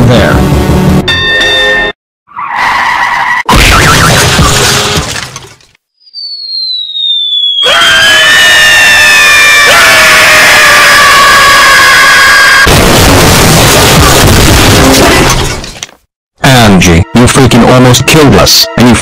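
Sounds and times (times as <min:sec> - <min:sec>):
cartoon crash: 0:03.4 - 0:05.3, 0:10.5 - 0:15.7
falling whistle: 0:06.0 - 0:12.7
long loud screech: 0:06.2 - 0:12.7
screaming: 0:07.4 - 0:12.7.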